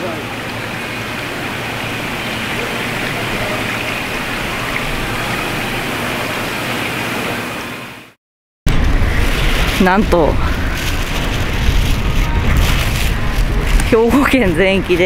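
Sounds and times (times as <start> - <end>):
water pouring and bubbling into tanks: 0.0 - 15.0.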